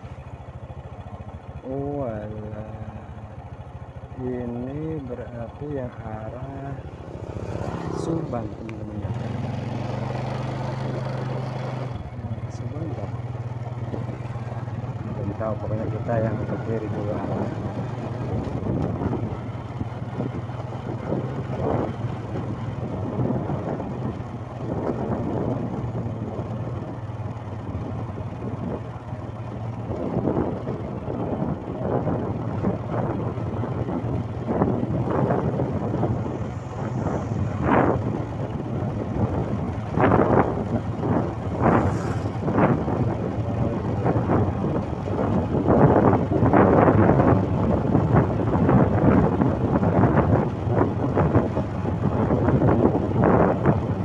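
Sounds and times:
motorcycle engine running: 0.0 - 54.0
wind buffeting microphone: 4.2 - 54.0.

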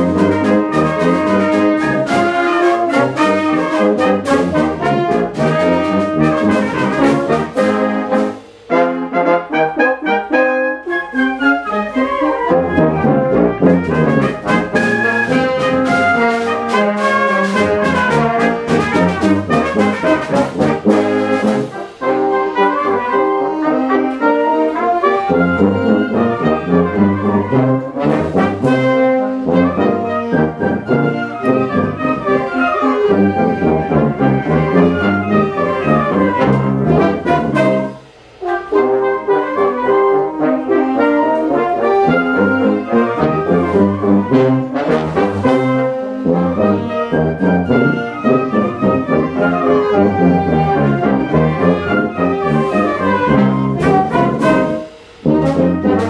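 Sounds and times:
wind ensemble playing: 0.0 - 56.0.

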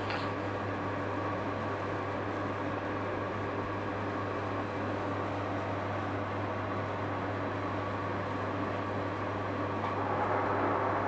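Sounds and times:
boiler low hum: 0.0 - 11.0
burner fan and fire rushing: 0.0 - 11.0.

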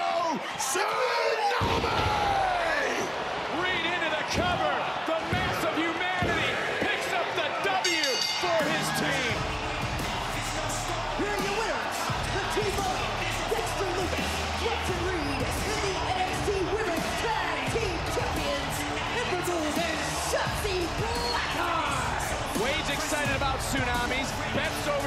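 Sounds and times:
excited voices: 0.0 - 25.0
ring bell: 7.8 - 9.0.

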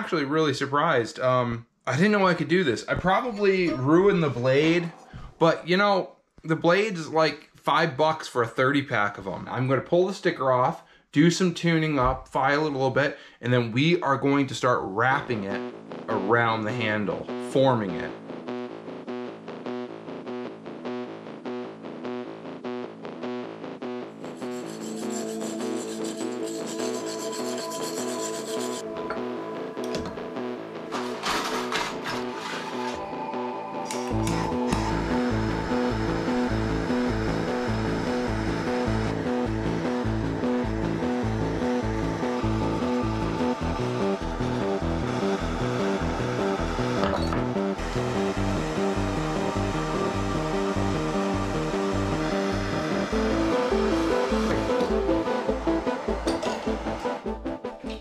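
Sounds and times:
background music with steady beat: 14.7 - 58.0
pulsing bass line: 14.9 - 58.0.

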